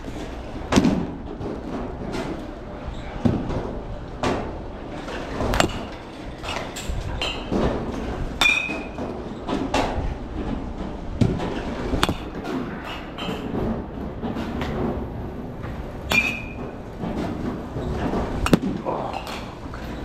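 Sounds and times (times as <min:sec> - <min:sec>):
metal bats striking balls: 0:05.3 - 0:10.0, 0:11.2 - 0:14.9, 0:16.0 - 0:20.0.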